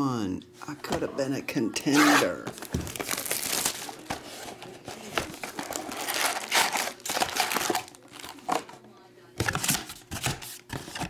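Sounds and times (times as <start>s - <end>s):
plastic wrap and foil crinkling: 2.0s - 8.8s.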